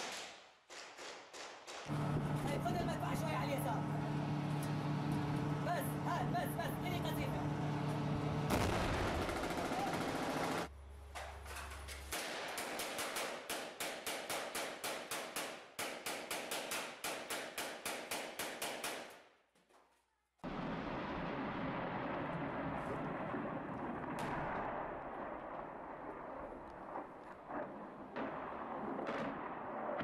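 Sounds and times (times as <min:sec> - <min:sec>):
steady low hum: 0:01.9 - 0:11.4
voices: 0:02.2 - 0:07.7
rapid rifle fire indoors: 0:09.0 - 0:10.7.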